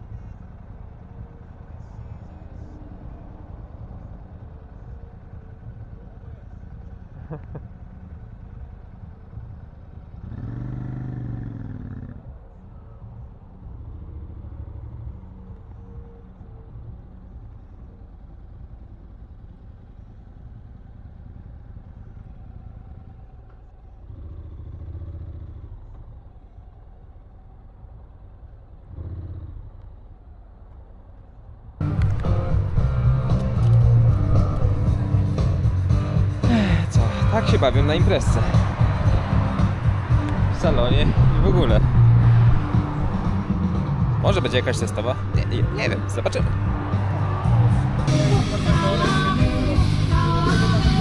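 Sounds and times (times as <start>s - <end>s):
motorcycle engines idling: 0.0s - 51.0s
loud music: 31.8s - 51.0s.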